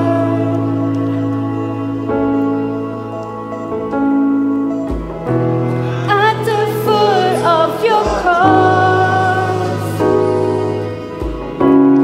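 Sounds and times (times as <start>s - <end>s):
keyboard chords: 0.0s - 12.0s
person singing: 5.7s - 11.1s.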